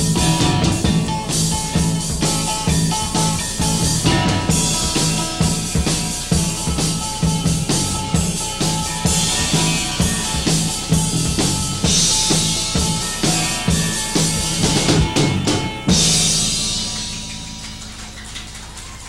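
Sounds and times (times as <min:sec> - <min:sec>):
bass guitar: 0:00.0 - 0:19.0
drum kit driving beat: 0:00.0 - 0:19.0.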